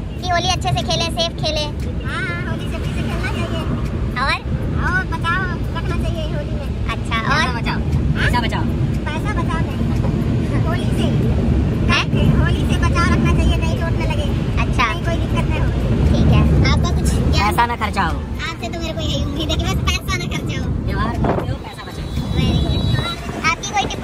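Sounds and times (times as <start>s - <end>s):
car road and engine rumble: 0.0s - 24.0s
people's voices: 0.0s - 24.0s.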